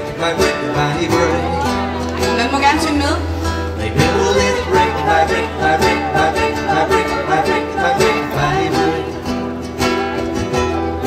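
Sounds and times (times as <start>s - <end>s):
acoustic guitars plucking: 0.0s - 11.0s.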